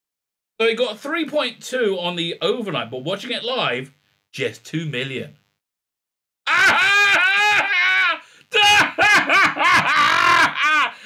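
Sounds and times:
man laughing loudly: 6.5s - 11.0s.

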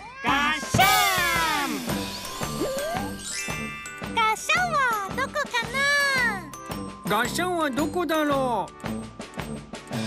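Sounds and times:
tinkling chime jingle: 0.8s - 8.3s.

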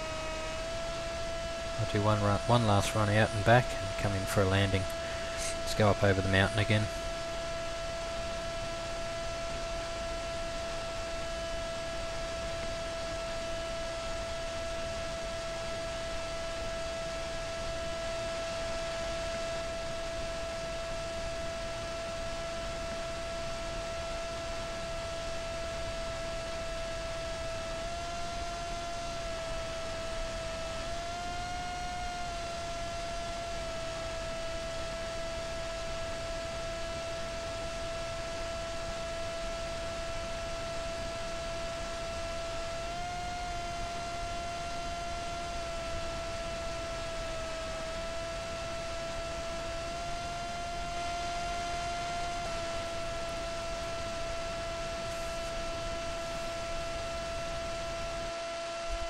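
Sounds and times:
small motor whine: 0.0s - 59.0s.

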